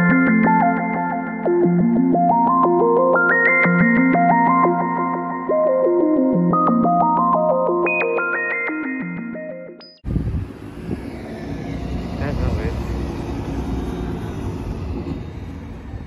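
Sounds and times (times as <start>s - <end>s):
traffic: 10.0s - 16.0s
bus engine rumble: 10.1s - 16.0s.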